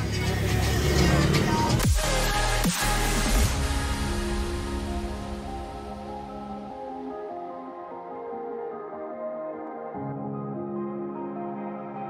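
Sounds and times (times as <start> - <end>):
bus engine and road noise: 0.0 - 1.9
music: 0.0 - 12.0.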